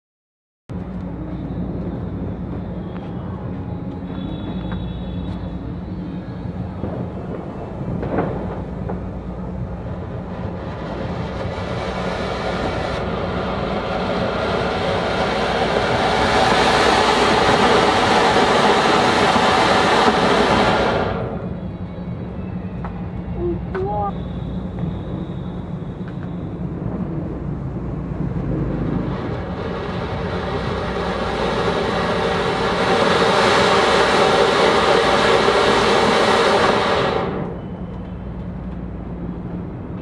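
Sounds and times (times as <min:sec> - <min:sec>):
fountain firework hissing: 0:04.2 - 0:21.6, 0:28.0 - 0:38.3.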